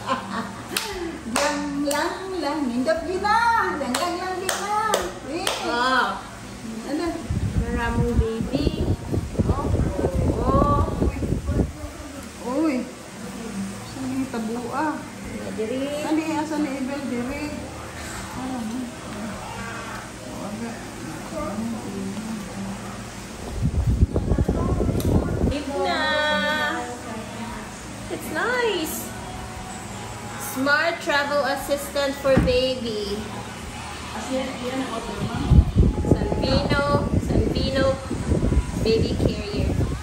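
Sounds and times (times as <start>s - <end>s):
sharp claps or slaps: 0.7s - 2.1s, 3.9s - 5.7s.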